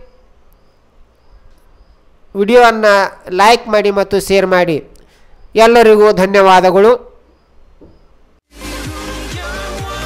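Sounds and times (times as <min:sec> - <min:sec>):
insect chirping: 0:00.0 - 0:08.4.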